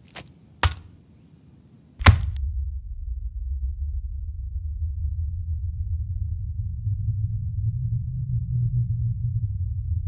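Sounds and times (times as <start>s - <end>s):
low rumble: 2.3s - 10.0s.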